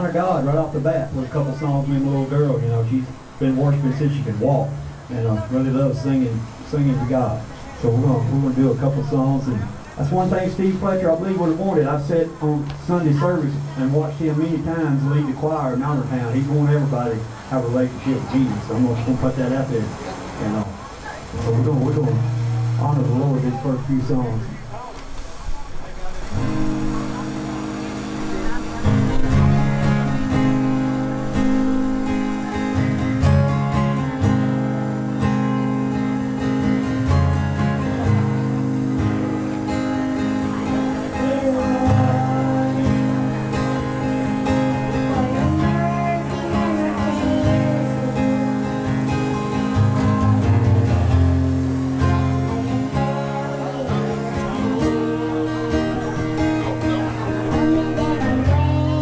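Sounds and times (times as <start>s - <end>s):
acoustic guitar strumming chords: 0.0s - 20.7s, 21.3s - 24.8s, 26.2s - 59.0s
girl singing: 41.1s - 43.3s, 45.0s - 48.8s, 52.6s - 56.0s, 57.3s - 59.0s.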